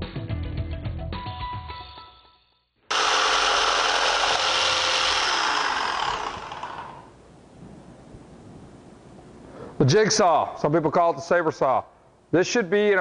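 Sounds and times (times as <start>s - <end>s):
electric jigsaw cutting wood: 2.9s - 7.2s.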